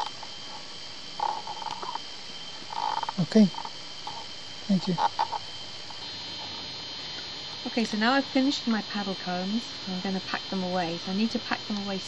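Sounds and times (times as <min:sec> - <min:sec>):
thin high drone: 0:00.0 - 0:12.0.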